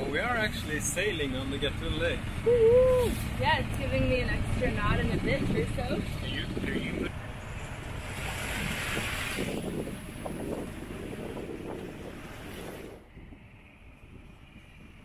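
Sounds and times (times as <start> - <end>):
water rushing past boat: 0.0 - 15.0
wind buffeting microphone: 2.3 - 15.0.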